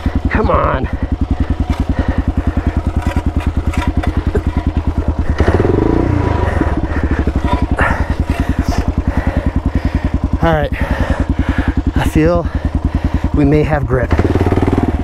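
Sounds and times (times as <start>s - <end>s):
motorcycle engine idling and revving: 0.0s - 15.0s.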